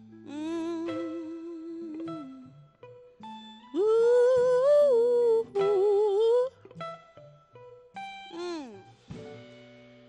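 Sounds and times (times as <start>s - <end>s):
woman singing wordless notes: 0.2s - 2.6s, 3.7s - 6.6s, 8.3s - 8.9s.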